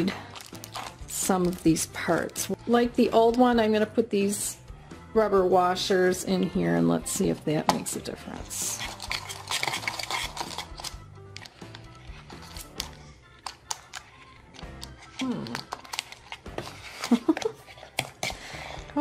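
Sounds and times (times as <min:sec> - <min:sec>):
background music: 0:00.0 - 0:19.0.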